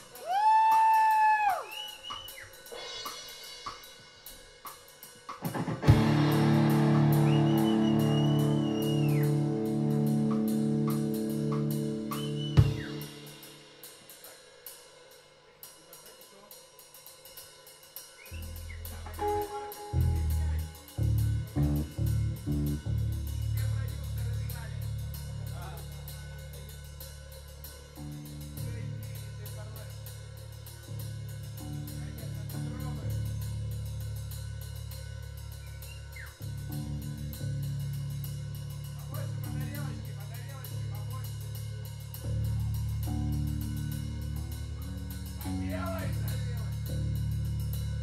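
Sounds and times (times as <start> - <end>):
drummer cymbal pulse: 0.0 - 48.0
bass and electric guitar: 5.5 - 13.2, 18.4 - 26.6, 30.9 - 34.4, 35.6 - 48.0.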